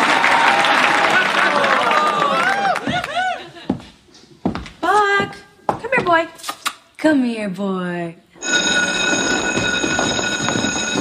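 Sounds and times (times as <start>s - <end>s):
electric school bell ringing: 8.4s - 11.0s.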